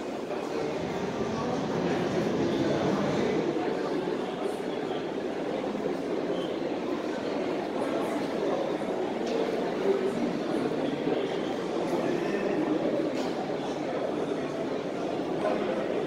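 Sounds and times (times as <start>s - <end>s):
background noise: 0.0s - 16.0s
murmur of distant voices: 0.0s - 16.0s.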